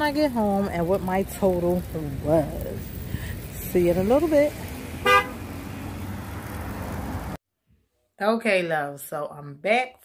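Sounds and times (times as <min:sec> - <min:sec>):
car horn toot: 0:05.0 - 0:05.4.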